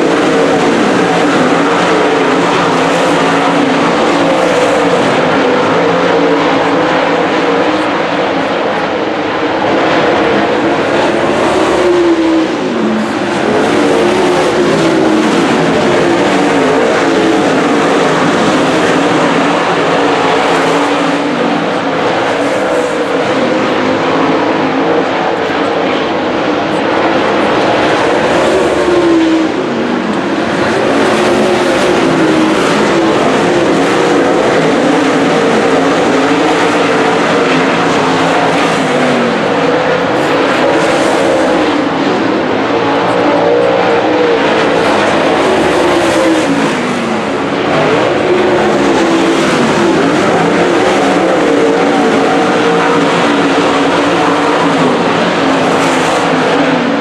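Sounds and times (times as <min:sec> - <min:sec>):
race car engines roaring past: 0:00.0 - 0:57.0.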